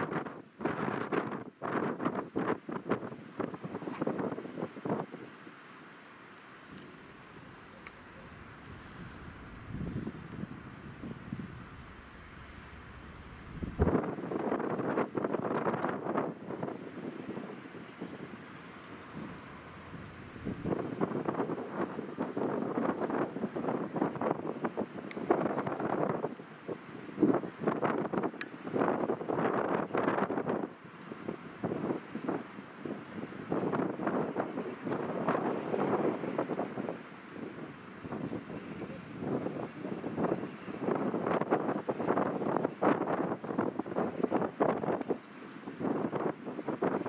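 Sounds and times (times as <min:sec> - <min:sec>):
wind buffeting microphone: 0:00.0 - 0:05.4, 0:06.7 - 0:47.0
diesel locomotive running: 0:06.8 - 0:14.8, 0:18.2 - 0:23.4.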